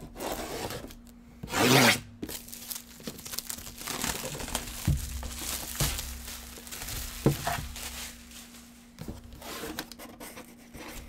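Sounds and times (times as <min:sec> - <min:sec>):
plastic wrap ripping: 0:01.6 - 0:09.0
plastic crinkling: 0:02.2 - 0:10.0
soft knocks on cardboard box: 0:06.9 - 0:07.9.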